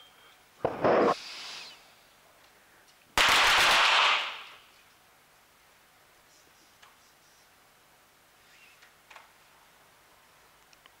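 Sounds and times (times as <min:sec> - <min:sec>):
pistol shots echoing indoors: 0:03.2 - 0:04.6.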